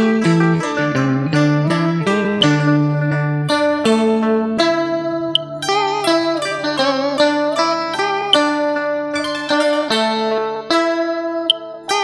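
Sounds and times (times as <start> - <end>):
plucked string instrument melody: 0.0 - 12.0.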